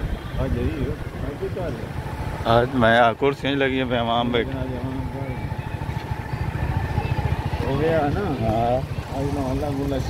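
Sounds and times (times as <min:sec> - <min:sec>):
vehicle engine pulsing: 0:00.0 - 0:10.0.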